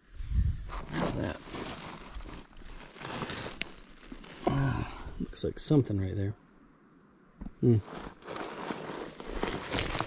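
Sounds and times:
stones and gravel scuffing: 0.8 - 4.4, 7.8 - 10.0.

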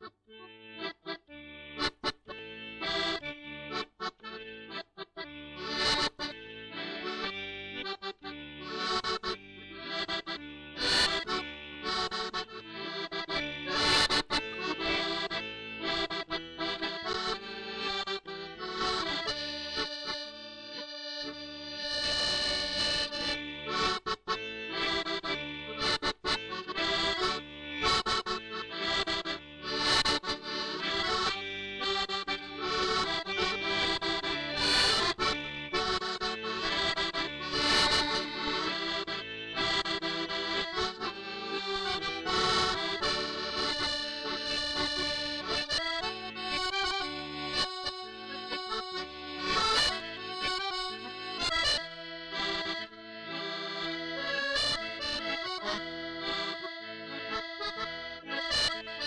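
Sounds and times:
accordion playing chords: 0.0 - 59.0.

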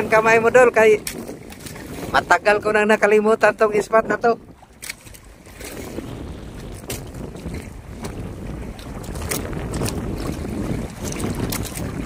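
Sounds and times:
water washing against hull: 0.0 - 12.0
wind buffeting microphone: 0.0 - 12.0.

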